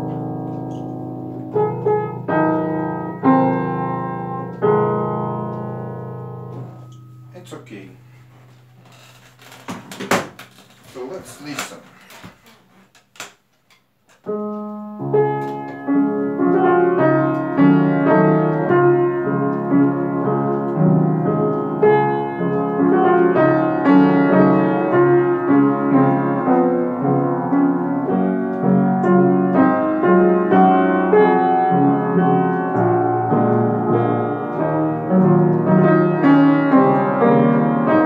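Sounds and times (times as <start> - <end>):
upright piano playing waltz: 0.0 - 8.8, 14.2 - 38.0
knocks and clatter: 9.2 - 12.4.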